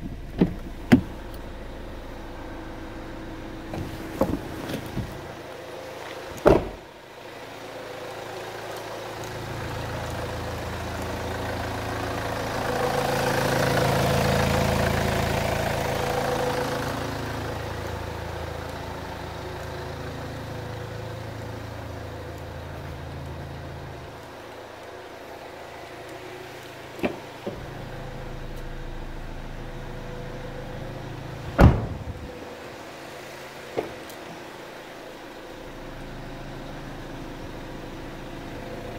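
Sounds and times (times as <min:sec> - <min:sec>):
car engine idling: 0:00.0 - 0:38.9.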